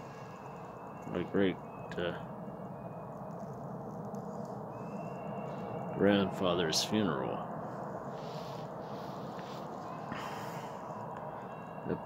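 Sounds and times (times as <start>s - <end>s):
faint high-pitched whine: 0.0s - 12.0s
low hiss and hum: 0.0s - 12.0s.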